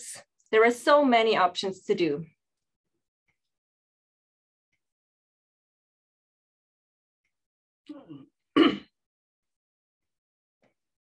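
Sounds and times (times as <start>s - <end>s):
woman clearing her throat: 7.9s - 9.0s.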